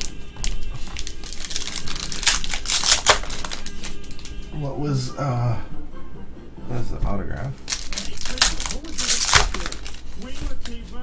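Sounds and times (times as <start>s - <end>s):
plastic wrapping crinkling: 0.0s - 4.4s, 7.6s - 11.0s.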